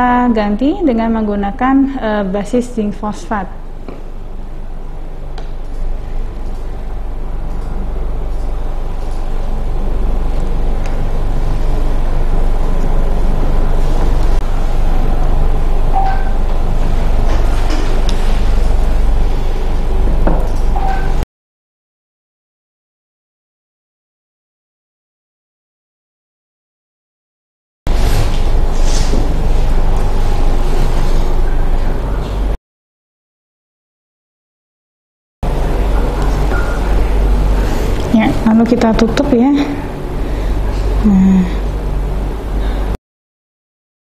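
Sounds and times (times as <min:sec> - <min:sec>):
machine running with low rumble: 0:00.0 - 0:21.2, 0:27.9 - 0:32.6, 0:35.4 - 0:43.0.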